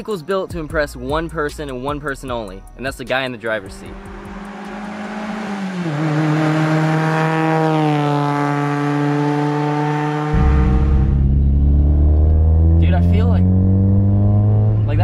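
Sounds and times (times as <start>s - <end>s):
car driving past: 3.7s - 15.0s.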